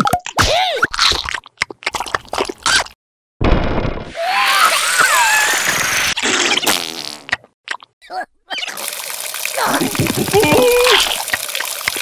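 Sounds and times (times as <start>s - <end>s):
squeaky warbling cartoon voice: 8.0s - 8.8s.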